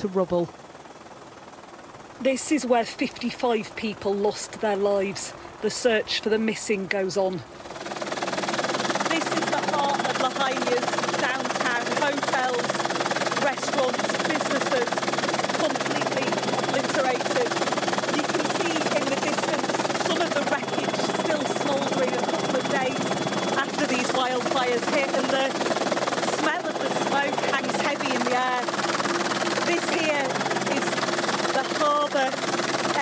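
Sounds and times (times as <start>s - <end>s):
helicopter engine and rotor: 0.0s - 33.0s
muffled voice speaking: 26.3s - 28.8s.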